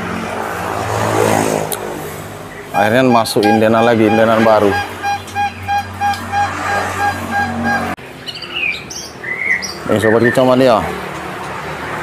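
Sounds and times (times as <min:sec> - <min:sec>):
songbirds chirping: 0:02.4 - 0:11.0
short pitched beeps: 0:02.8 - 0:07.9.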